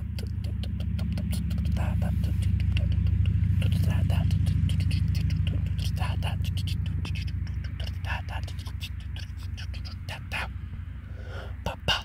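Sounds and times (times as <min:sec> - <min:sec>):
clicking mouth sounds: 0:00.0 - 0:10.5
person whispering: 0:00.0 - 0:10.6, 0:11.5 - 0:12.0
deep steady drone: 0:00.0 - 0:12.0.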